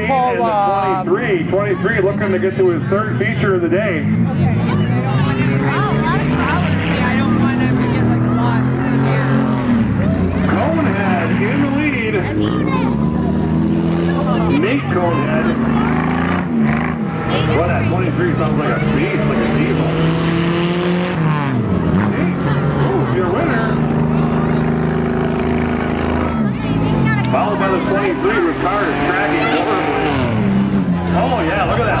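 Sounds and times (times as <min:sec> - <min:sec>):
car engines revving: 0:00.0 - 0:32.0.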